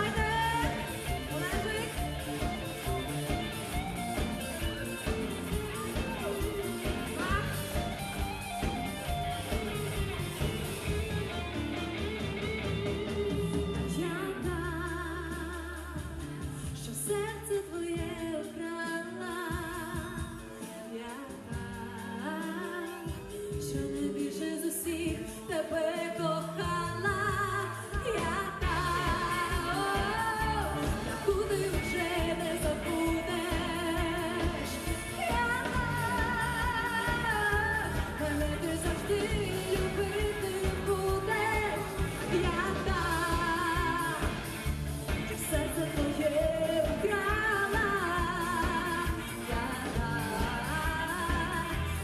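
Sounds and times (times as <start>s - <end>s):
woman singing with vibrato: 0.0s - 8.8s, 13.2s - 52.0s
pop band playing: 0.0s - 52.0s.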